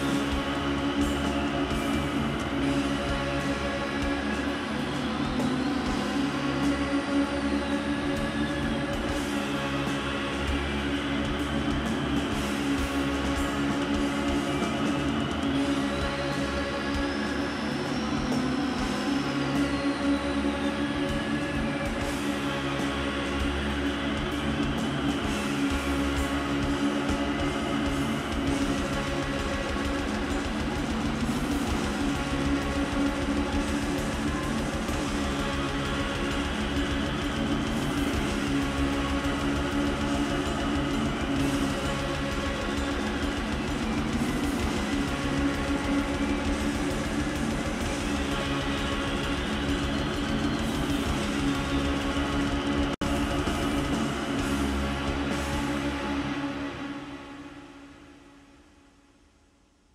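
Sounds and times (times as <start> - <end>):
droning pitch-bending synth lines: 0.0 - 58.0
rapid metal drumming: 8.1 - 17.3, 21.9 - 56.3.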